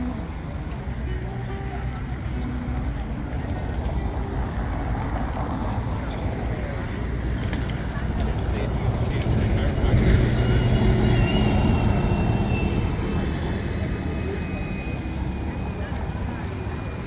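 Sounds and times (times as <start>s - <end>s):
bus driving past: 0.0s - 17.0s.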